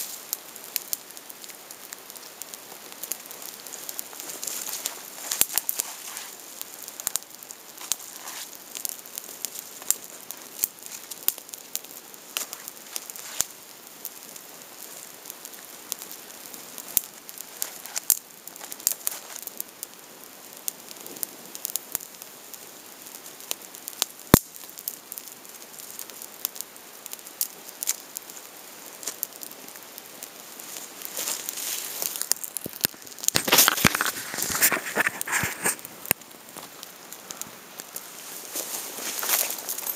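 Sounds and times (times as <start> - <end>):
campfire crackling and popping: 0.0 - 39.9.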